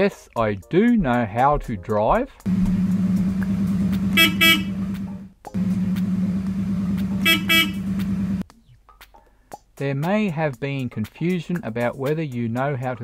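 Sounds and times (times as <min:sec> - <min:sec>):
car engine running: 0:02.5 - 0:08.4
car horn tooting: 0:04.0 - 0:05.7, 0:06.8 - 0:08.4.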